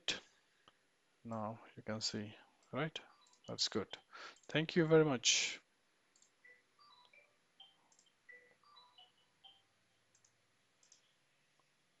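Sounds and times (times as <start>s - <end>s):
computer mouse clicks: 2.6s - 3.5s, 6.1s - 6.4s, 7.0s - 8.2s, 10.1s - 11.2s.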